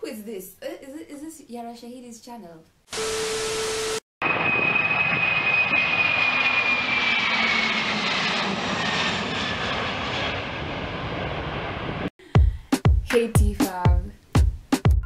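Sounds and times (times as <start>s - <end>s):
jet roar with high whine: 3.0s - 12.1s.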